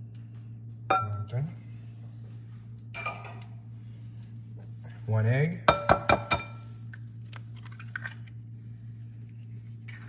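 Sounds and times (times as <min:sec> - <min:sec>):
steady low hum: 0:00.0 - 0:10.0
kitchenware clink: 0:03.0 - 0:03.5, 0:05.7 - 0:06.7.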